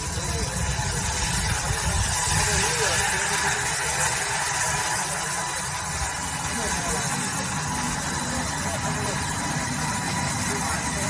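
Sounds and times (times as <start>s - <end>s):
low machine drone: 0.0s - 11.0s
wire saw hissing: 0.0s - 11.0s.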